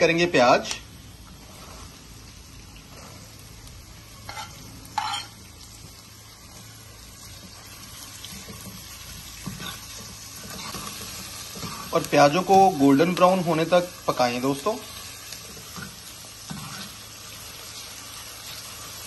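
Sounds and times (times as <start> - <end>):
onions sizzling in oil: 0.0 - 19.0
metal spoon stirring: 4.3 - 5.4, 8.2 - 12.7.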